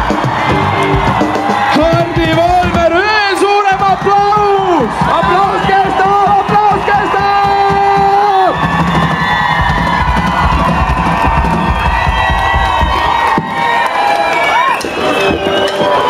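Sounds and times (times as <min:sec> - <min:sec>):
crowd cheering and whooping: 0:00.0 - 0:16.0.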